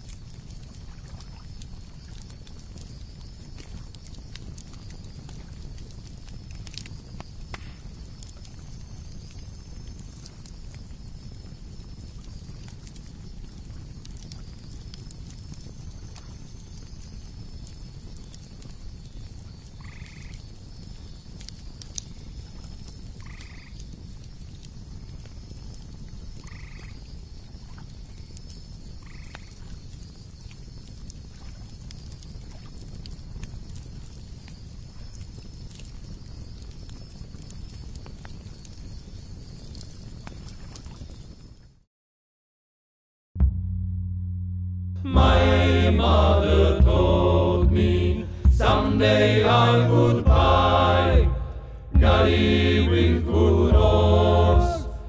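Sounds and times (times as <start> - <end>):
high pulsing insect chirr: 0.0 - 41.6
low rumble: 43.4 - 55.0.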